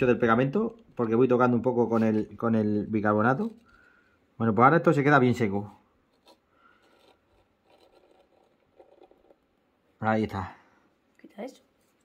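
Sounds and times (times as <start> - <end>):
glue tube scratching plastic: 6.1 - 9.6.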